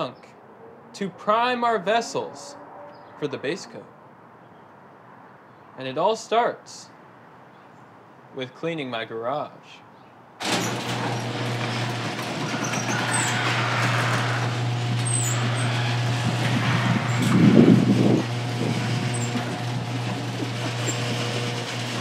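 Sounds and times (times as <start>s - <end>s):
garage door opener motor: 10.4s - 22.0s.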